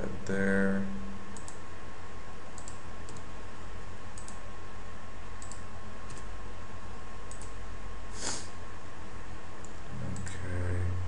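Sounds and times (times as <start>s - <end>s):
recording hiss and hum: 0.0s - 11.0s.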